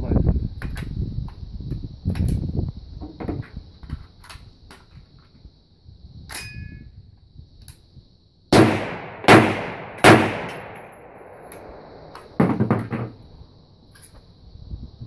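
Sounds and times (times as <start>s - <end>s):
rifle shots with ringing echo: 8.5s - 12.6s.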